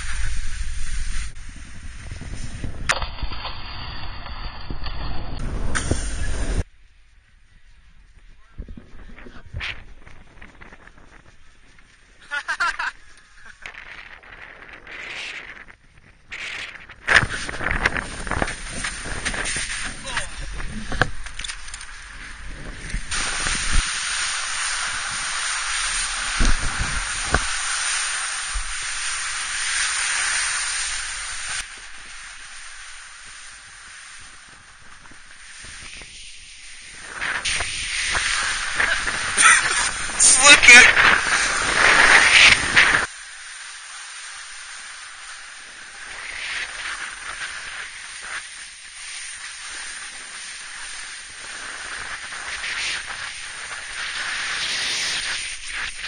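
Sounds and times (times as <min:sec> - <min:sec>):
snowboard scraping over snow: 0:00.0 - 0:06.7, 0:08.6 - 0:56.0
wind buffeting microphone: 0:00.0 - 0:12.3, 0:12.9 - 0:29.7.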